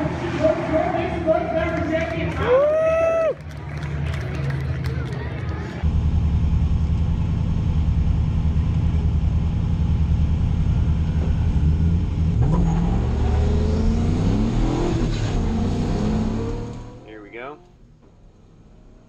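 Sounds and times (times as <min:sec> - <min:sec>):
car engine revving: 0:00.0 - 0:02.6, 0:05.8 - 0:19.0.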